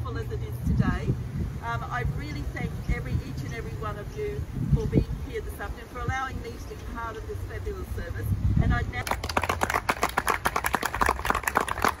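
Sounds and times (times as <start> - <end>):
small crowd applauding: 9.0 - 12.0.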